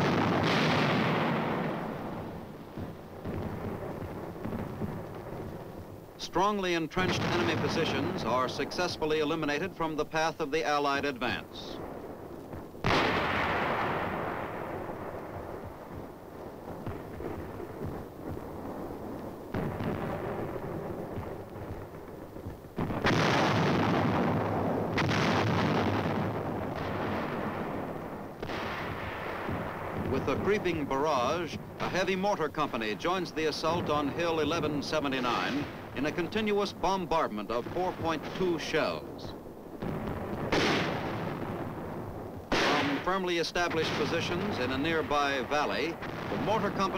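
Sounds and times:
artillery blasts rumbling: 0:00.0 - 0:46.9.

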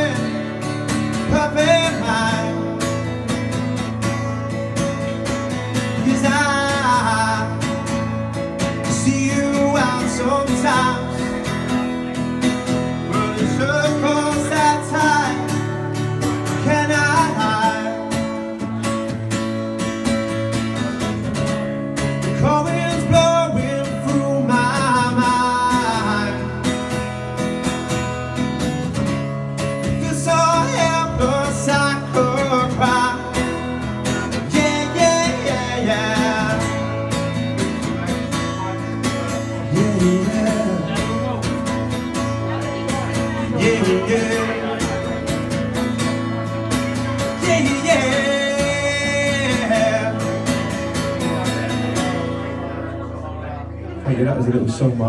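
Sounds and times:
man singing into microphone: 0:00.0 - 0:03.2, 0:05.8 - 0:11.8, 0:13.0 - 0:18.6, 0:22.2 - 0:26.8, 0:29.8 - 0:37.3, 0:38.6 - 0:41.8, 0:42.4 - 0:45.3, 0:47.0 - 0:51.2
acoustic guitar strumming: 0:00.0 - 0:55.0.

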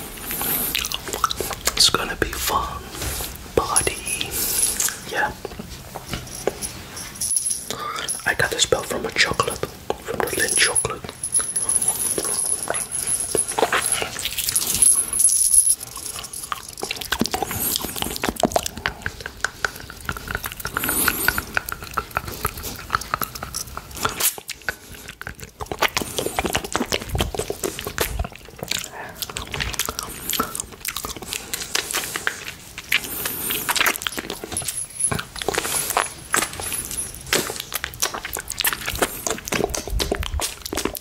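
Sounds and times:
wet mouth licking and sucking: 0:00.0 - 0:06.6, 0:15.8 - 0:41.0.

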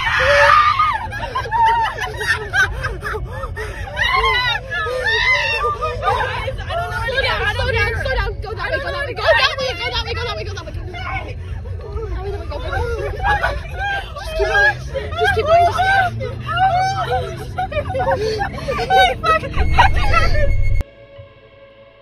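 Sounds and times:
agitated voices shouting: 0:00.0 - 0:20.8
car engine and road rumble: 0:00.0 - 0:22.0.

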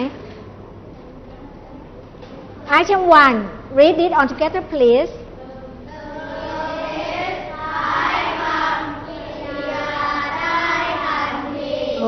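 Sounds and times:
children reading aloud in unison: 0:05.3 - 0:12.0.

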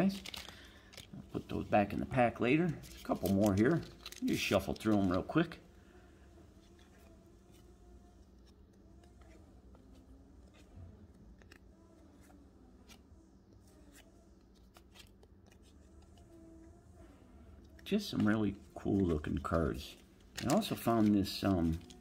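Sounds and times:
cardboard cards shuffled by hand: 0:00.0 - 0:05.6, 0:06.5 - 0:16.4, 0:17.8 - 0:22.0.

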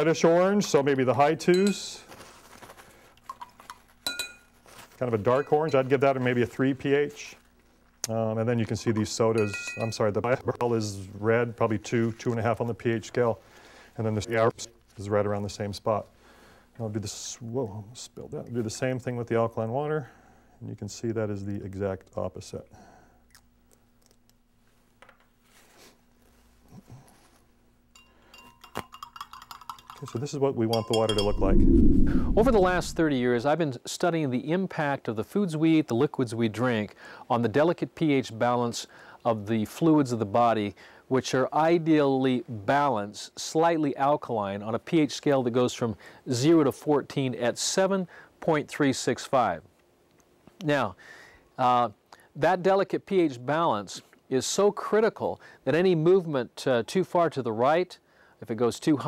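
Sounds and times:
stirring stick ticking on glass: 0:28.4 - 0:31.4.

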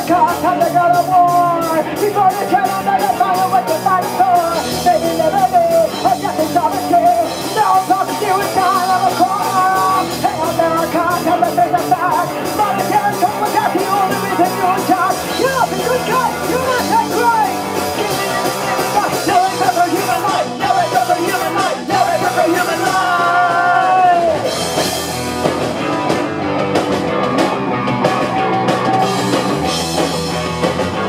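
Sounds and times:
punk rock band playing live: 0:00.0 - 0:31.0
woman singing: 0:17.9 - 0:23.8.

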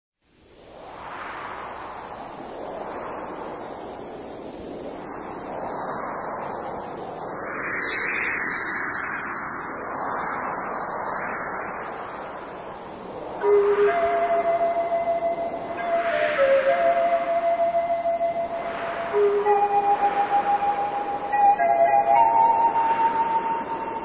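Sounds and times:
whooshing surf-like noise: 0:00.2 - 0:24.0.

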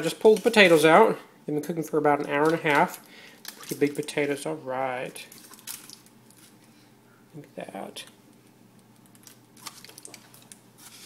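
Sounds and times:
aluminium foil crinkling: 0:00.0 - 0:01.0, 0:02.2 - 0:04.4, 0:05.0 - 0:06.7, 0:08.4 - 0:11.0.

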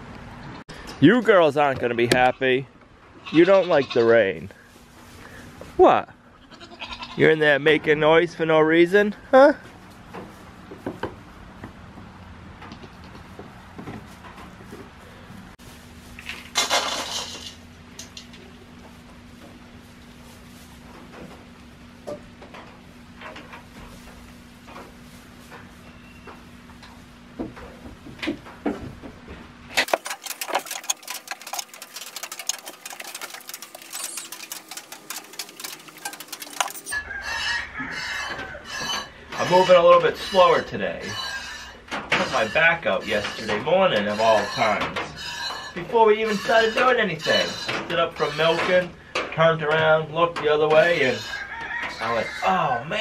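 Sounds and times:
goats rustling in straw: 0:04.4 - 0:05.8, 0:14.0 - 0:16.4, 0:18.5 - 0:22.0, 0:22.9 - 0:27.2, 0:30.0 - 0:38.8
rapid small clicks and crackles: 0:29.8 - 0:36.9
feed poured into metal bowl: 0:29.8 - 0:37.0
milk squirting into metal pot: 0:29.8 - 0:37.0.

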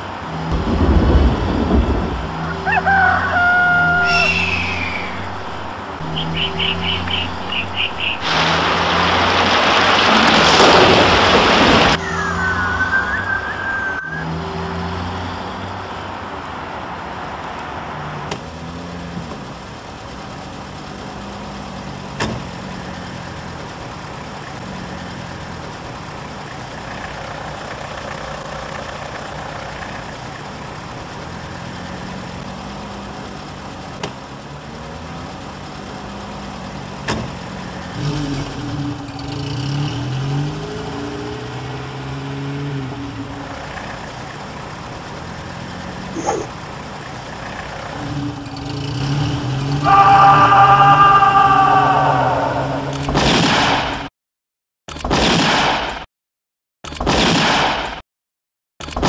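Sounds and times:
car engine running steadily: 0:00.0 - 0:08.2, 0:13.2 - 0:49.9
loud rush of noise: 0:00.0 - 0:14.3, 0:49.2 - 0:54.1
brief high squeal: 0:03.9 - 0:05.4, 0:12.4 - 0:14.4.

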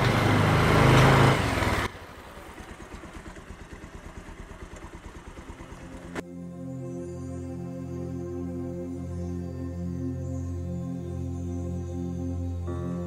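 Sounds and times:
motorcycle engine running: 0:00.0 - 0:06.2.

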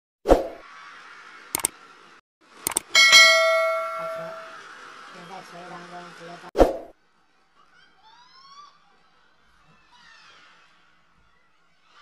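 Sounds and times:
short clicks: 0:01.6 - 0:01.8, 0:02.7 - 0:02.9
bell ding: 0:03.0 - 0:04.6.

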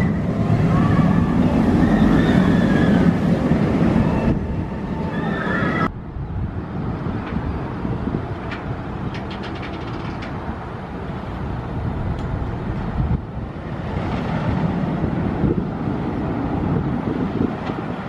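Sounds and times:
roller coaster rumbling on track: 0:00.0 - 0:18.0.

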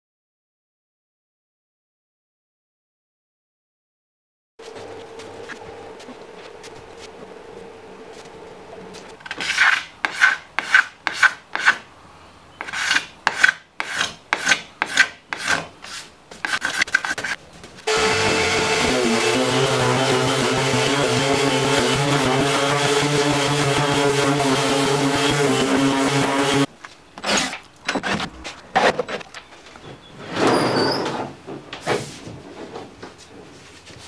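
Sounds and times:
hand tool rubbing on wood: 0:12.6 - 0:26.7
electric power tool running: 0:17.9 - 0:26.7.

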